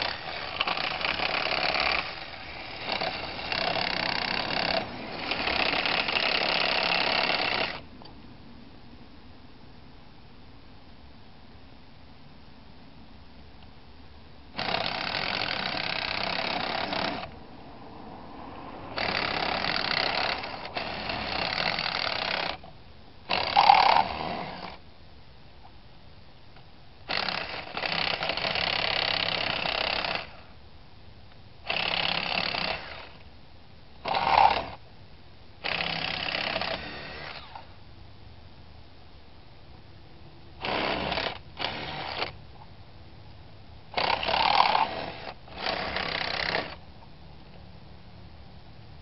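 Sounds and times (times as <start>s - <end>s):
cordless drill boring into metal: 0.0s - 7.8s, 14.6s - 17.3s, 19.0s - 22.7s, 23.3s - 24.8s, 27.1s - 30.4s, 31.7s - 33.2s, 34.0s - 34.8s, 35.6s - 37.6s, 40.6s - 42.4s, 44.0s - 46.8s.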